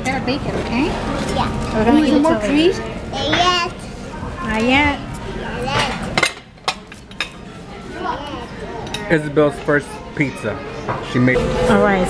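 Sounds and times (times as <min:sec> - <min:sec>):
dishes and cutlery clinking: 0:05.7 - 0:07.4, 0:08.8 - 0:09.2.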